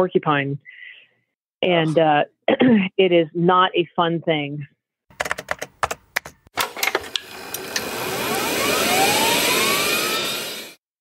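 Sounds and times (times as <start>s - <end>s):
quick clicks and taps: 5.1s - 7.2s
whoosh with rising whistling tones: 8.0s - 10.8s.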